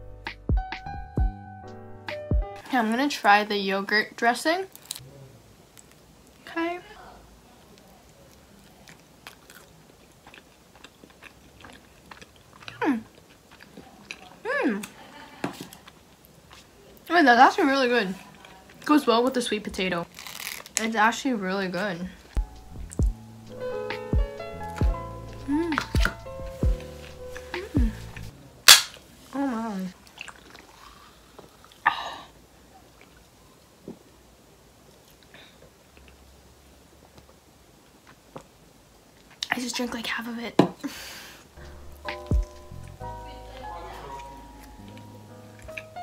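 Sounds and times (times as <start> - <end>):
soft chewing: 4.7 - 17.2, 17.8 - 20.8, 21.8 - 28.5, 29.2 - 31.9, 32.7 - 34.1, 34.8 - 39.6, 41.4 - 46.0
person humming hmm: 24.8 - 28.3
soda can pull tab pop: 28.7 - 29.0.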